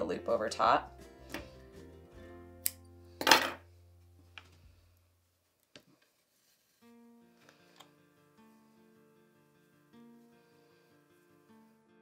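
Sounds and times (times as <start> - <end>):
soft background music: 0.0 - 5.3, 6.3 - 12.0.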